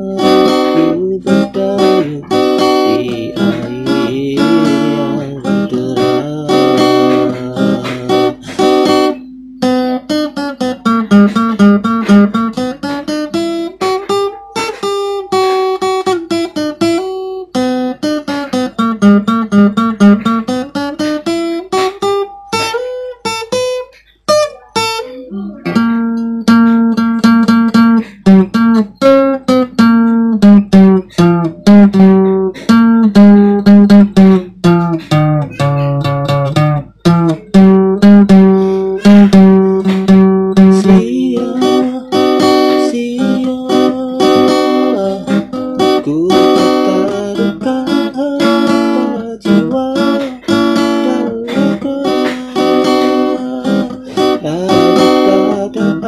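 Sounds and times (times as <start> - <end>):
solo acoustic guitar: 0.0 - 56.0.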